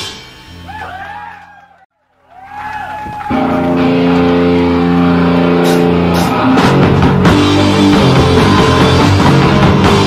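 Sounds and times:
distorted guitar and bass chord: 0:03.3 - 0:10.0
electric guitar feedback: 0:03.3 - 0:10.0.

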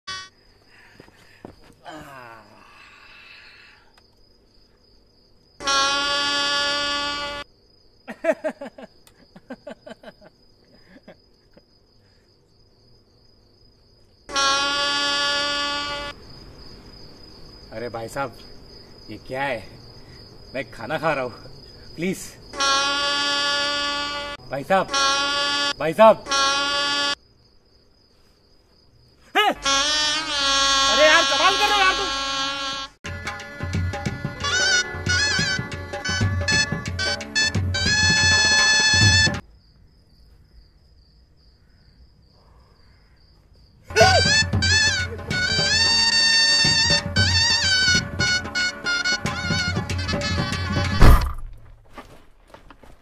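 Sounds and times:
loud horn-like tone: 0:05.6 - 0:07.4, 0:14.3 - 0:16.2, 0:22.6 - 0:27.2, 0:29.6 - 0:33.5
voice holding long note: 0:43.9 - 0:46.6.

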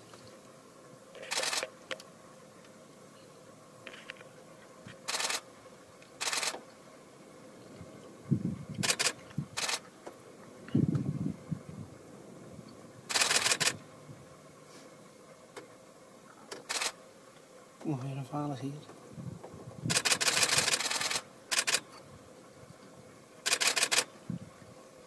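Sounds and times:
camera shutter clicks: 0:01.2 - 0:02.1, 0:05.0 - 0:05.4, 0:06.2 - 0:06.6, 0:08.8 - 0:09.8, 0:13.1 - 0:13.8, 0:16.6 - 0:17.0, 0:19.9 - 0:21.9, 0:23.4 - 0:24.1.

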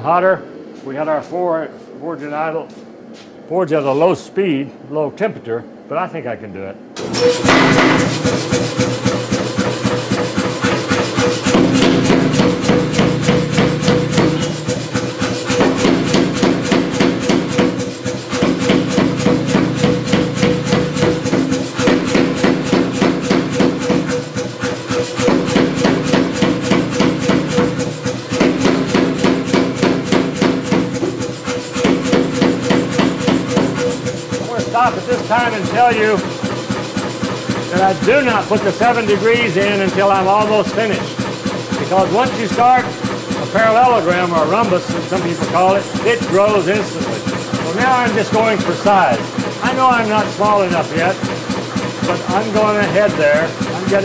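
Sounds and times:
hammer motor hum: 0:07.0 - 0:54.0
power hammer striking steel: 0:07.0 - 0:54.0.

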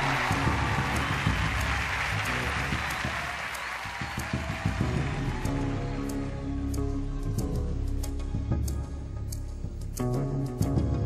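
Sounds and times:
audience applause: 0:00.0 - 0:06.3
background music: 0:00.0 - 0:11.0.

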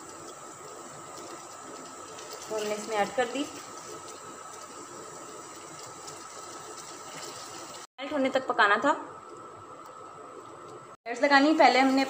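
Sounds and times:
sauce simmering and bubbling: 0:00.0 - 0:07.9.

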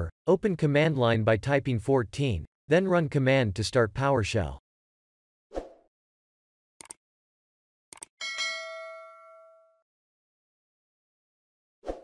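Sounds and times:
double mouse click: 0:06.8 - 0:07.0
bell ding: 0:08.2 - 0:09.8.

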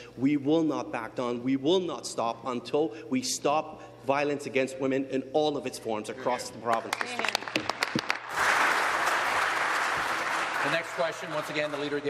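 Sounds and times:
people clapping: 0:06.6 - 0:12.0.

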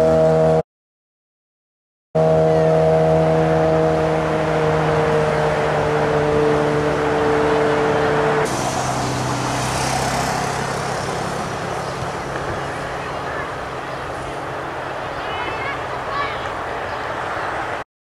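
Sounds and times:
engine humming: 0:02.2 - 0:17.8
hiss: 0:08.5 - 0:11.3.

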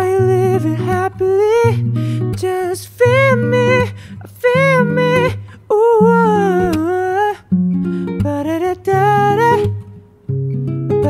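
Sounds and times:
man singing pop vocal: 0:00.0 - 0:10.0
breath: 0:01.9 - 0:02.3, 0:03.9 - 0:04.2, 0:05.4 - 0:05.7, 0:07.8 - 0:08.2.

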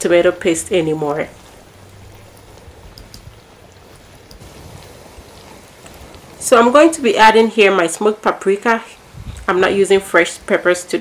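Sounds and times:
food sizzling in oil: 0:00.0 - 0:11.0.

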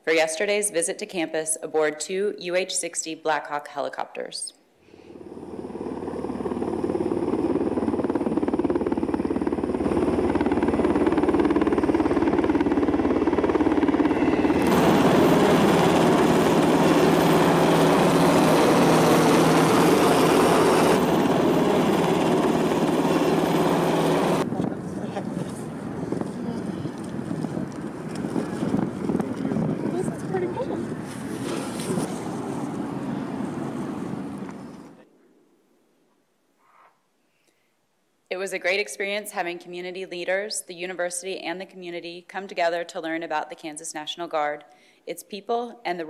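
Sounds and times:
helicopters flying overhead: 0:05.0 - 0:35.0
wind on microphone: 0:05.1 - 0:35.0.

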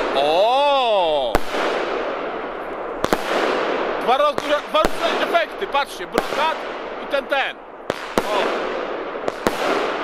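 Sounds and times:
firework bursts with sharp bangs: 0:00.0 - 0:10.0.

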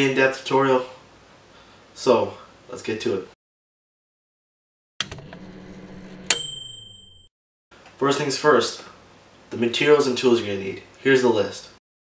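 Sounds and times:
bright ringing ding: 0:06.2 - 0:07.3.

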